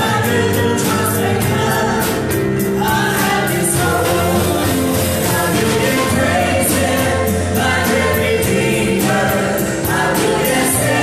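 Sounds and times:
live band with drums and keyboard: 0:00.0 - 0:11.0
women singing gospel song: 0:00.0 - 0:11.0.

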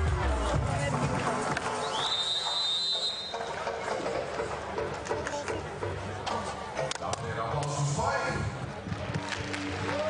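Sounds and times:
high whistle blast: 0:01.8 - 0:03.6.

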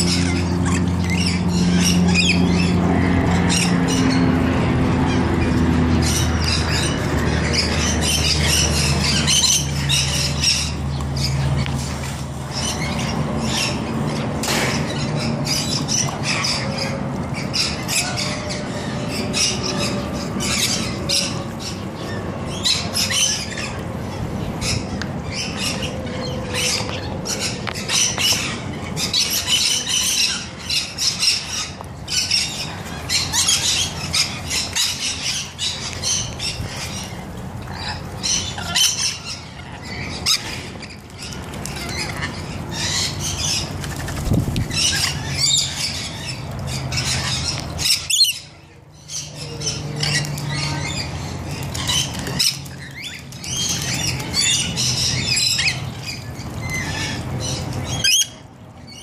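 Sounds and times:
lorikeets screeching: 0:00.0 - 0:59.0.

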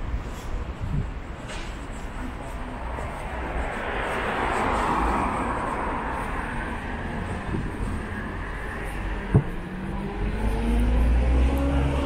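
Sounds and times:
vehicle passing: 0:02.3 - 0:12.0.

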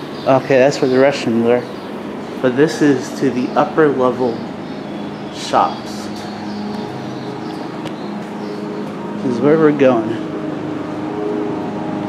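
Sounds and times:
low mechanical hum: 0:00.0 - 0:12.0
street noise: 0:00.0 - 0:12.0.

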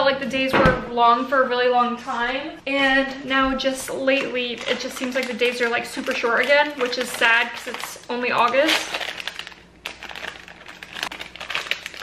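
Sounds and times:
crinkly wrapper being pulled open: 0:04.6 - 0:12.0.

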